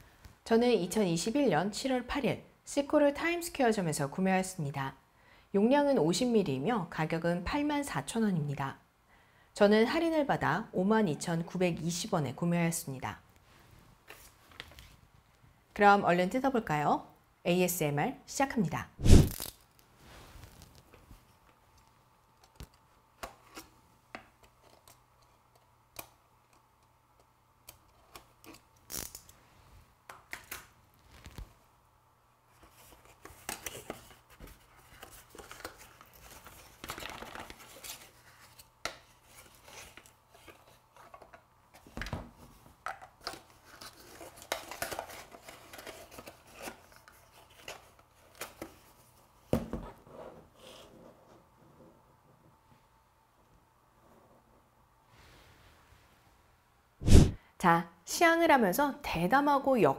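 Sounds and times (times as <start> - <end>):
wrapping rustling and tearing: 19.1 - 20.9, 30.4 - 31.6, 32.6 - 41.0.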